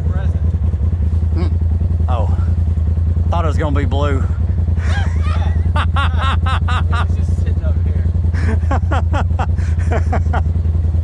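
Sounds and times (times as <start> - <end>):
vehicle engine idling: 0.0 - 11.0
man laughing: 4.7 - 7.4, 8.3 - 10.6.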